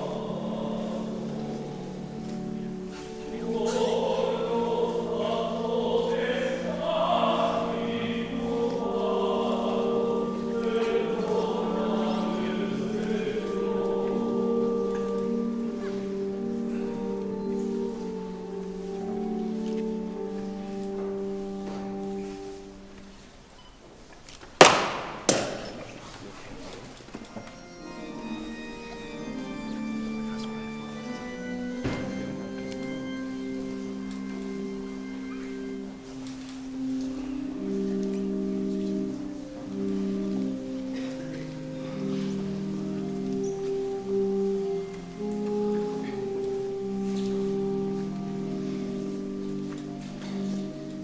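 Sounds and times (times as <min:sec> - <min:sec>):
choir singing: 0:00.0 - 0:23.2, 0:27.2 - 0:51.0
sharp knocks in a church: 0:24.6 - 0:25.9, 0:31.8 - 0:32.4.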